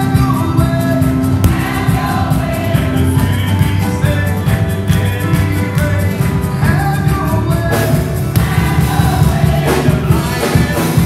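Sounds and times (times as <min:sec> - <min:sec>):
band with steady beat: 0:00.0 - 0:11.0
choir singing gospel music: 0:00.0 - 0:11.0.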